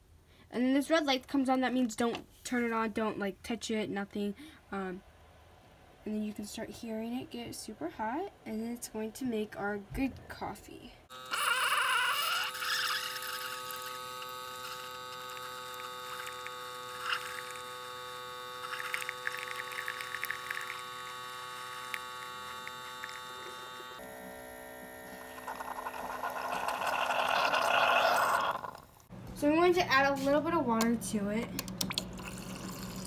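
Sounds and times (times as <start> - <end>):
coffee maker pump humming: 11.1 - 29.1, 31.6 - 33.0
coffee streaming into a mug: 13.0 - 17.6, 18.6 - 23.2, 25.3 - 28.8, 32.0 - 33.0.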